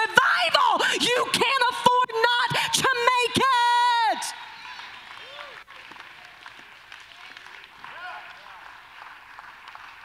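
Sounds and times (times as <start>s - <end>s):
crowd applauding: 4.4s - 10.0s.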